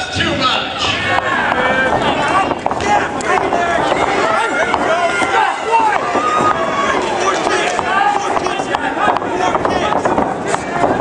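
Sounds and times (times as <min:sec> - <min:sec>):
spectators shouting and yelling: 0:00.0 - 0:11.0.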